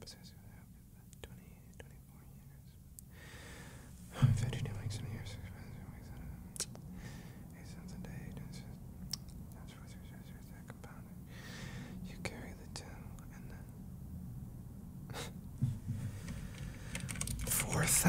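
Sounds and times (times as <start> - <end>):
man whispering: 0.0 - 3.0, 4.1 - 6.9, 7.5 - 11.3, 12.0 - 13.8, 17.4 - 18.0
breathy exhale: 3.1 - 4.0, 6.9 - 7.4, 11.3 - 12.0
soft low thump: 4.1 - 6.8, 15.6 - 16.2.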